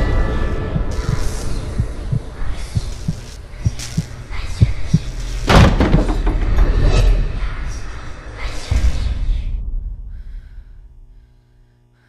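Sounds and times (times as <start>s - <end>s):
low paired thuds like heartbeat: 0.0s - 6.7s
steady low hum: 0.0s - 12.0s.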